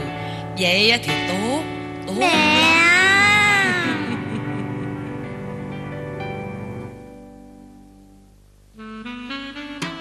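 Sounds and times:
background music with sustained chords: 0.0s - 8.4s.

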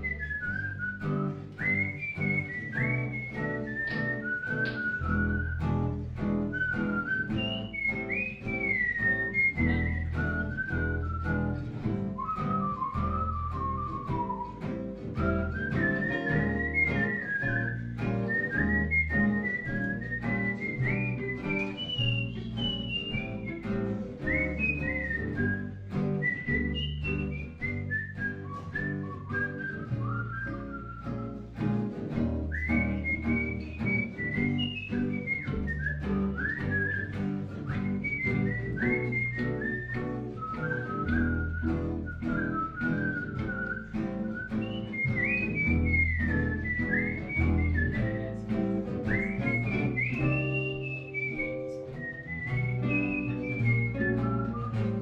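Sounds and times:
acoustic guitars strumming: 0.0s - 55.0s
upright bass low notes: 0.0s - 55.0s
whistled melody: 0.0s - 55.0s.

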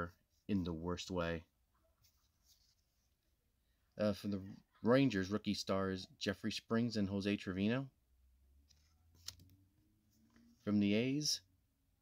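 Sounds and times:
trading card rustle: 8.6s - 10.7s.

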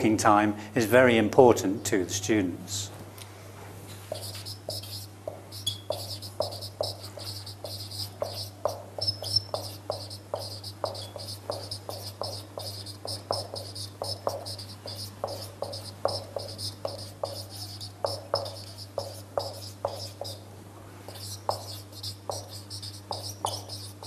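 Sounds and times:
marker scratching on whiteboard: 4.1s - 20.4s, 21.1s - 24.0s.

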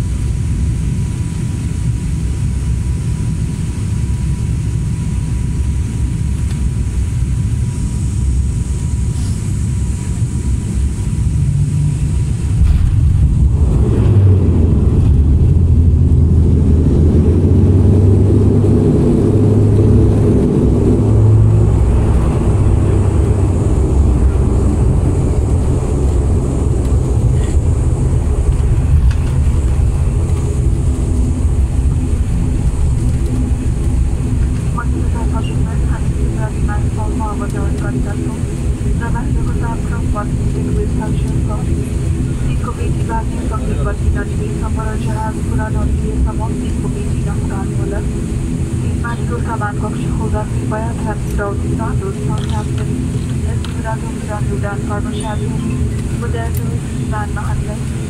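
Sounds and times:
propeller engine drone in cabin: 0.0s - 58.0s.

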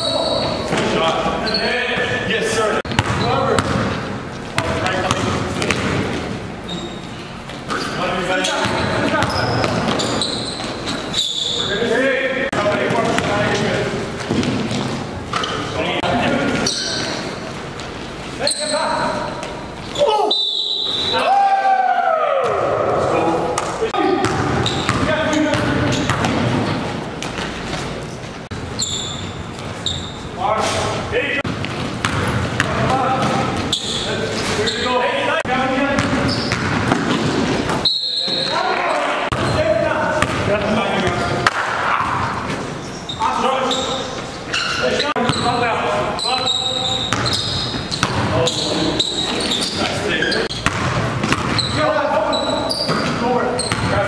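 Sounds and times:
players calling out: 0.0s - 27.2s
basketball bouncing on hardwood: 2.9s - 3.9s, 4.6s - 6.2s, 50.6s - 51.6s.

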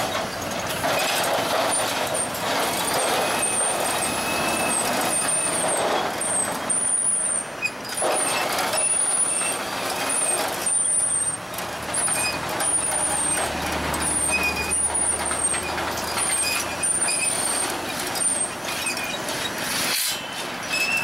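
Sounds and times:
road traffic passing: 0.0s - 21.0s
short high-pitched squeaks: 0.9s - 11.4s, 12.0s - 21.0s.

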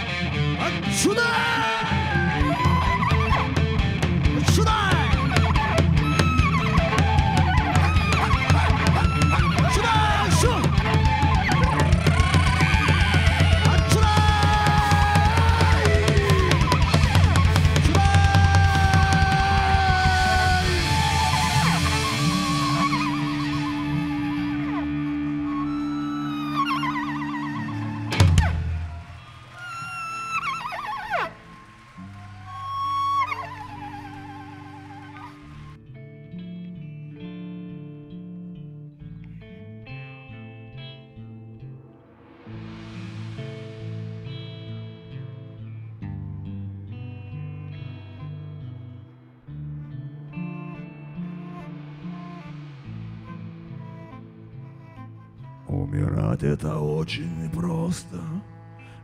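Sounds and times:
electric guitar lead: 0.0s - 55.7s
bass: 0.0s - 59.0s
steady drum beat: 2.7s - 24.2s
high wavering lead tone: 18.8s - 35.8s
low sustained drone: 19.8s - 35.8s, 41.6s - 45.7s.

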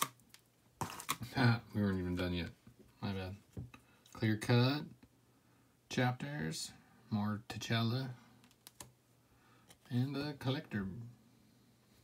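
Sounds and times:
trading cards clicking: 8.4s - 8.9s.

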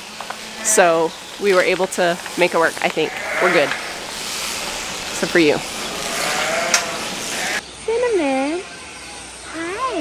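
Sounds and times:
steady hiss: 0.0s - 7.6s
sheep bleating faintly: 6.0s - 7.6s.

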